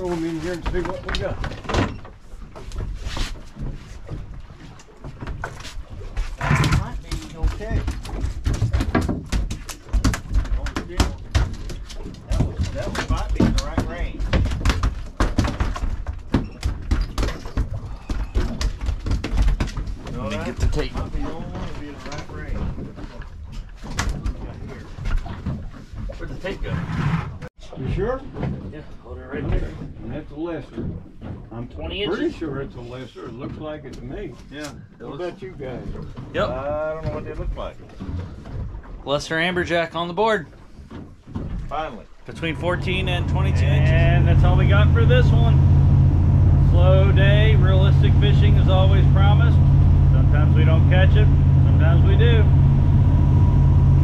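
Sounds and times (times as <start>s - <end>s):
knocks and clatters on deck: 6.5s - 21.2s
indistinct voices talking: 42.3s - 52.6s.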